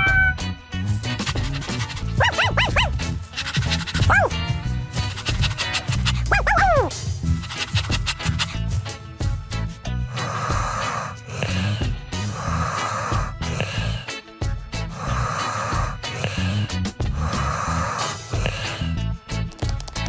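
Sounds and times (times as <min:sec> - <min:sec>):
background music: 0:00.0 - 0:20.0
cartoon snoring: 0:01.7 - 0:03.0, 0:10.1 - 0:14.2, 0:14.9 - 0:19.0.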